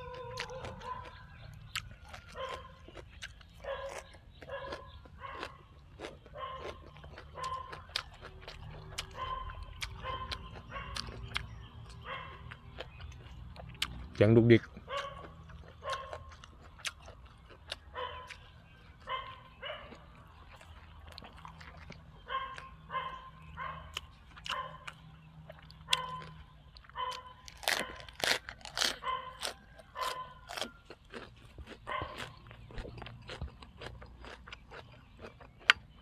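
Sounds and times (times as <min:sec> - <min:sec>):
crunching raw vegetables: 0:00.0 - 0:36.0.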